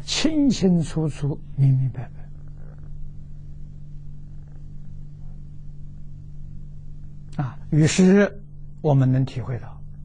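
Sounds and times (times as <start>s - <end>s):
faint room noise: 0.0s - 10.0s
low electrical hum: 0.0s - 10.0s.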